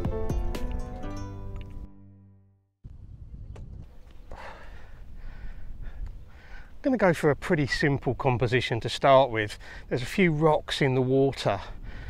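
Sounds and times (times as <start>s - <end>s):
acoustic guitar music: 0.0s - 2.2s.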